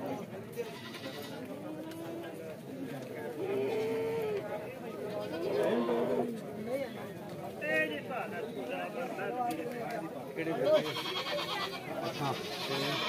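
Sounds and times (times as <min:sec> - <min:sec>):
goats bleating: 0:00.6 - 0:01.5, 0:05.1 - 0:06.3, 0:10.6 - 0:13.0.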